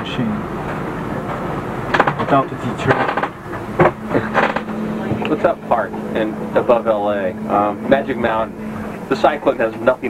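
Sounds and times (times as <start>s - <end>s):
man talking: 0.0s - 0.4s, 2.2s - 3.2s, 4.1s - 10.0s
steady low hum: 0.0s - 10.0s.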